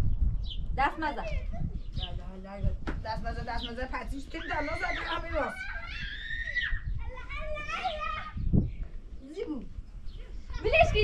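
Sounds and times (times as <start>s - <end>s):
child speaking: 1.1s - 2.1s, 6.9s - 8.5s.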